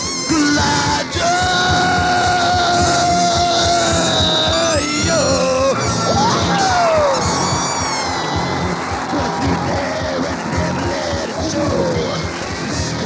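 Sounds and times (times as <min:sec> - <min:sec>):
noise-punk band playing: 0:00.0 - 0:13.0.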